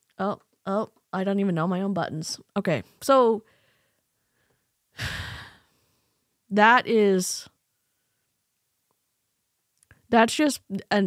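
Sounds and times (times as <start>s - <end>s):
woman sighing: 5.0s - 5.7s.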